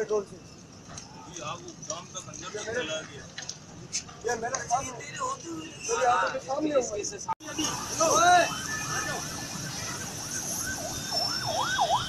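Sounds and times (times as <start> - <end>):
emergency siren yelping: 7.4 - 12.0.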